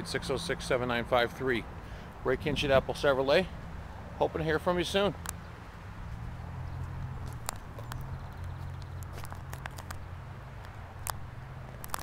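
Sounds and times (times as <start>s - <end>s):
footsteps on asphalt: 2.8s - 4.2s, 4.9s - 12.0s.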